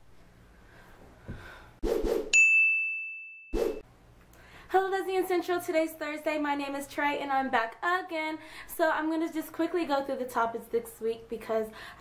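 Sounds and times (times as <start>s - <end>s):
bell-like ding: 2.4s - 3.6s.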